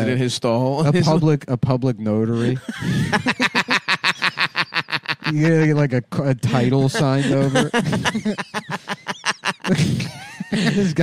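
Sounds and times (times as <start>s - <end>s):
person laughing hard: 2.4s - 5.9s, 6.5s - 11.0s.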